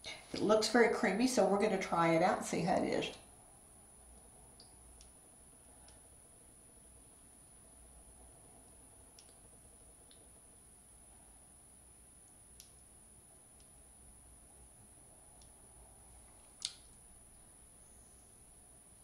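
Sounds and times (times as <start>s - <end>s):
faint high-pitched whine: 0.0s - 19.0s
faint small clicks: 8.6s - 9.4s, 12.2s - 12.9s, 16.3s - 17.0s.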